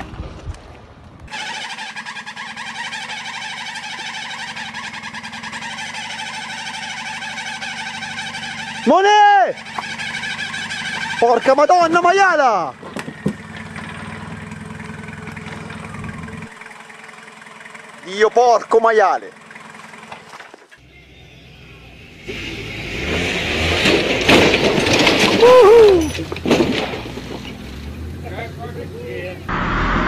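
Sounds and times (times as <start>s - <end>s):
vehicle engine droning: 1.0s - 30.0s
person yelling: 8.9s - 9.6s, 25.4s - 26.2s
rush of noise: 29.5s - 30.0s.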